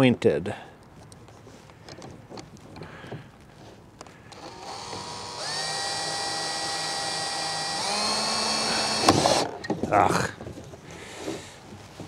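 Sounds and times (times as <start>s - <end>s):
cordless drill motor whine: 4.3s - 9.5s.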